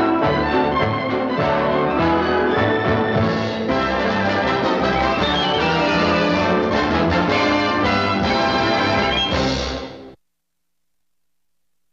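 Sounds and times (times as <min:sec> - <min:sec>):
orchestral cartoon music: 0:00.0 - 0:09.9.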